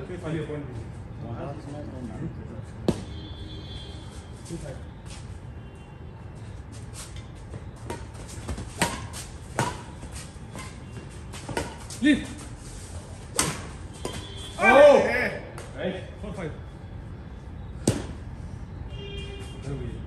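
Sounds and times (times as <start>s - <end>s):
rackets hitting shuttlecock: 7.8s - 12.1s, 13.2s - 14.6s.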